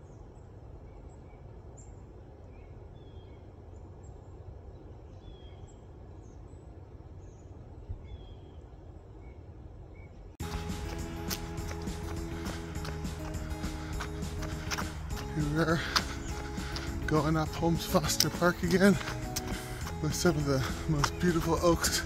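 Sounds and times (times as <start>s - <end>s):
small birds chirping: 0.0s - 22.0s
music with a beat: 10.4s - 22.0s.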